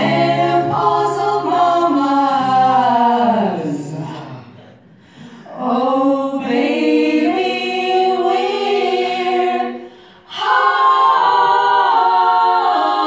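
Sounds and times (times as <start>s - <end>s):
women singing in harmony: 0.0s - 4.3s, 5.4s - 13.0s.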